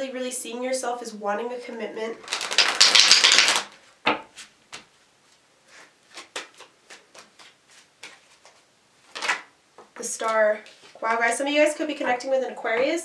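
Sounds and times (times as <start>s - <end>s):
cards shuffling: 2.2s - 3.8s, 5.8s - 9.5s
cards clicking and tapping: 2.3s - 4.2s.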